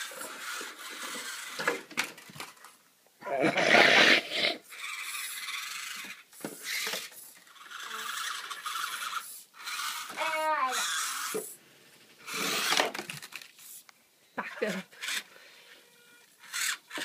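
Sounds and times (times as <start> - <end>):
small electric motor whirring: 0.0 - 1.8, 4.6 - 11.6, 12.2 - 13.8, 14.6 - 17.0.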